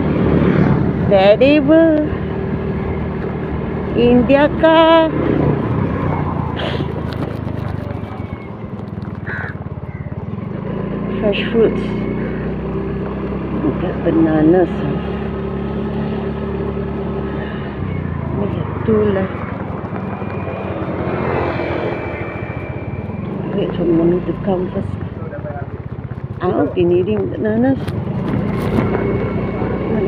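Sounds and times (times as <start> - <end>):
vehicle engine and road noise: 0.0 - 30.0.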